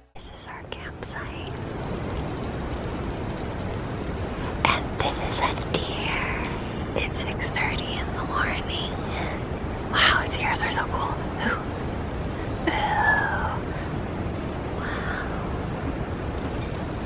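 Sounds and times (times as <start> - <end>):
steady background hiss: 0.0 - 17.0
hushed whispering: 0.1 - 1.6, 4.4 - 11.7, 12.6 - 13.8, 14.8 - 15.6.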